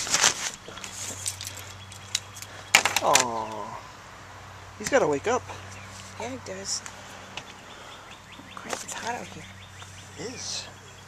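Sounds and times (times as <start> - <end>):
rustling and handling noise: 0.0 - 3.3, 5.6 - 6.2.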